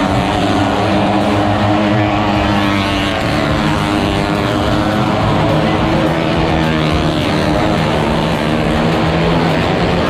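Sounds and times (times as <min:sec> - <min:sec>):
motorcycle engine running hard: 0:00.0 - 0:10.0.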